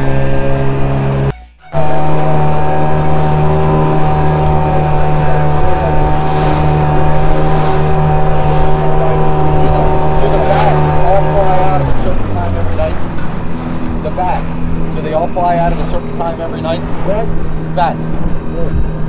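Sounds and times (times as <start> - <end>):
boat motor running: 0.0 - 19.0
water rushing along hull: 0.0 - 19.0.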